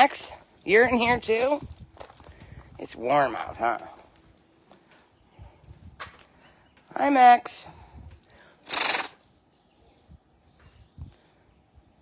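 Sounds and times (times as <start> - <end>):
tiger chuffing: 8.6 - 9.2.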